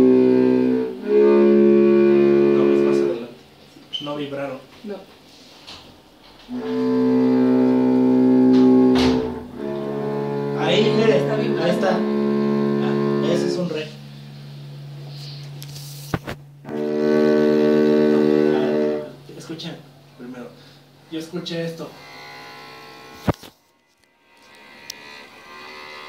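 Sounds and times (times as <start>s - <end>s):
cello long bowed notes: 0.0s - 3.4s, 6.4s - 15.4s, 16.6s - 19.5s, 20.6s - 26.0s.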